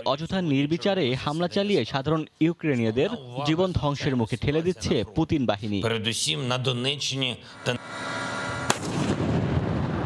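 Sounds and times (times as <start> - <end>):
sharp crack: 8.7 - 10.0.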